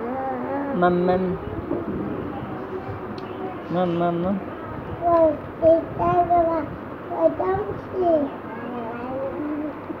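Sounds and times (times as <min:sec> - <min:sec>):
small child cooing and humming: 0:00.0 - 0:00.8, 0:05.0 - 0:10.0.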